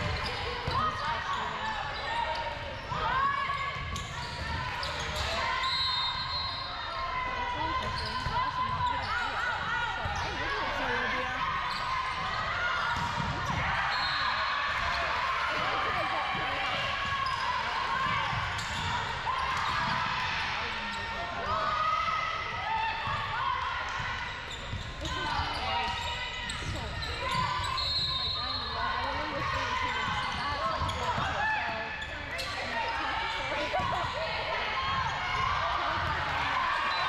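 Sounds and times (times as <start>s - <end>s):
players and spectators cheering: 0.0s - 37.0s.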